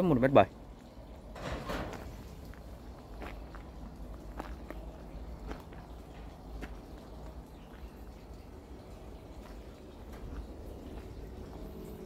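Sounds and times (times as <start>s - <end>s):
footsteps walking slowly: 1.9s - 12.0s.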